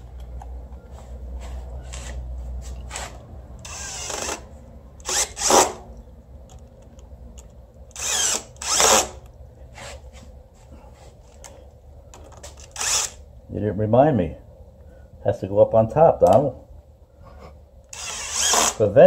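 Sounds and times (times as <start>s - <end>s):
cordless drill bursts: 3.6s - 4.4s, 5.0s - 5.8s, 7.9s - 9.2s, 12.6s - 13.2s, 17.9s - 18.8s.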